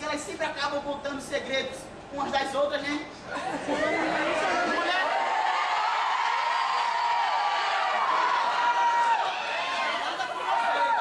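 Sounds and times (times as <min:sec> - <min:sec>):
audience laughing and chattering: 0:03.3 - 0:05.1.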